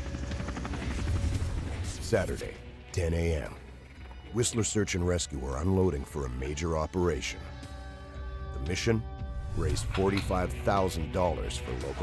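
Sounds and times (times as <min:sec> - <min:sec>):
helicopter rotor chop: 0:00.0 - 0:04.7.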